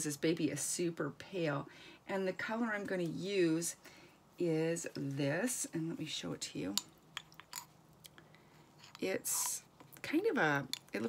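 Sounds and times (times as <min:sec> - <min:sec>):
paintbrush stirring paint in jar: 0:08.7 - 0:11.0.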